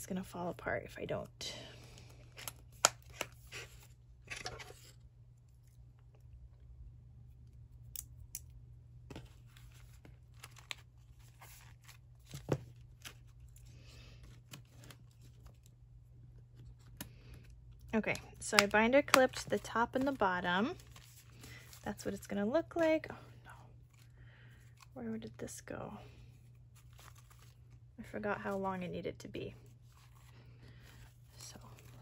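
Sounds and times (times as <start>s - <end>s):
paper handling: 9.1s - 15.7s, 18.1s - 21.9s, 26.5s - 27.8s.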